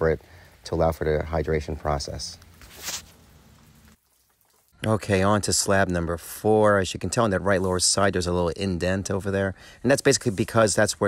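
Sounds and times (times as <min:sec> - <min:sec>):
garden hose spraying water: 0:00.0 - 0:11.0.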